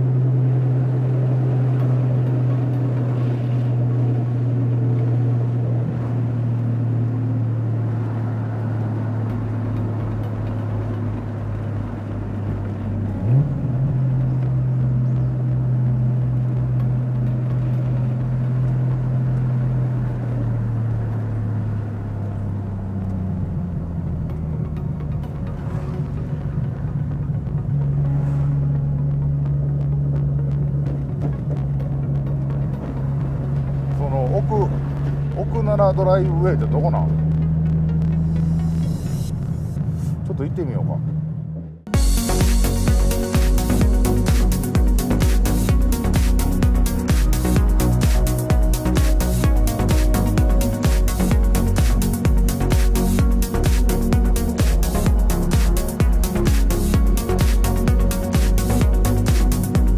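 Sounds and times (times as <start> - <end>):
car engine droning: 0.0 - 59.9.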